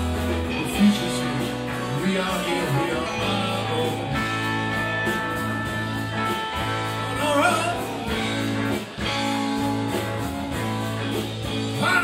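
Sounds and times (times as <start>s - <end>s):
bass notes: 0.0s - 12.0s
electric guitars: 0.0s - 12.0s
steady drum beat: 0.0s - 12.0s.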